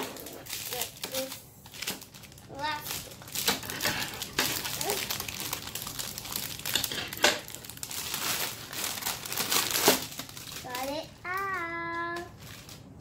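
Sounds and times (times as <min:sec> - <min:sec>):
plastic wrapper crinkling: 0:00.0 - 0:13.0.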